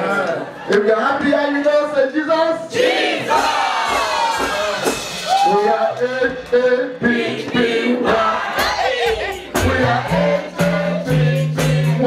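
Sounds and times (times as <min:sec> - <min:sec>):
congregation shouting and cheering: 0:02.7 - 0:10.6
congregation singing: 0:02.7 - 0:12.0.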